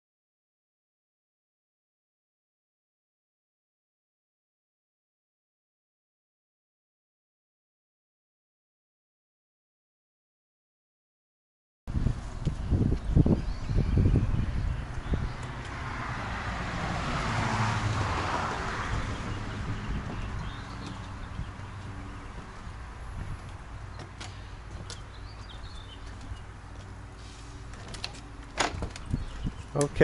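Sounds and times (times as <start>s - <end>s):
wind rumbling on microphone: 11.9s - 26.6s, 28.6s - 30.0s.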